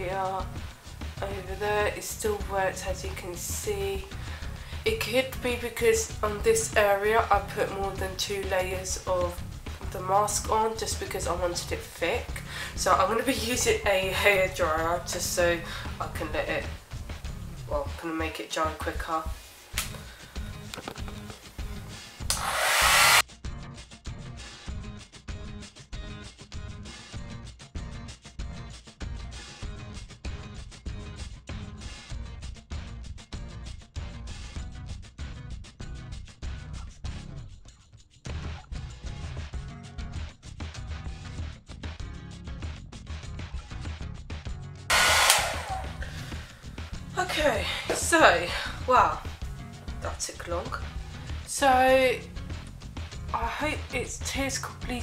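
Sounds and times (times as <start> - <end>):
background music with steady beat: 0.0 - 55.0
hair dryer blowing: 22.3 - 23.2, 44.9 - 46.4.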